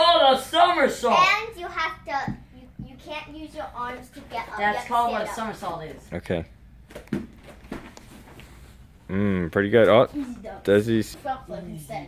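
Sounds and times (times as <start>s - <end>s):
thumps on foam mat: 6.9s - 8.0s.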